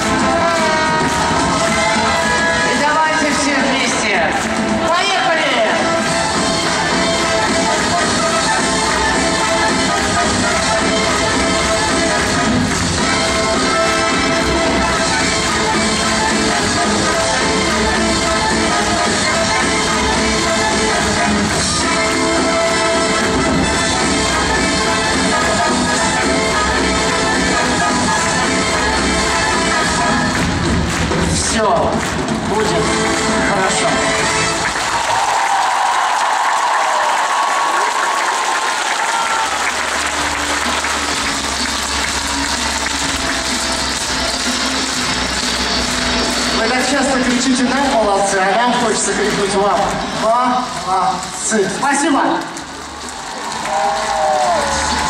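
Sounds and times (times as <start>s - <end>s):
music over sound system: 0.0s - 35.3s, 38.4s - 55.0s
audience applauding and cheering: 0.0s - 55.0s.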